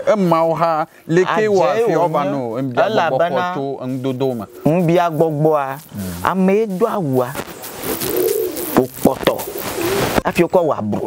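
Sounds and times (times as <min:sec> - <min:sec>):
steady hiss: 0:00.2 - 0:10.6
bird calling: 0:03.0 - 0:10.2.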